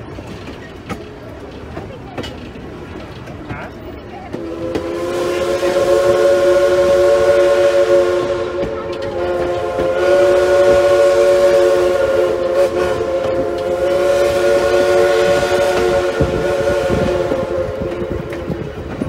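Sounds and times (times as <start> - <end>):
steam locomotive chime whistle: 4.4 - 18.5.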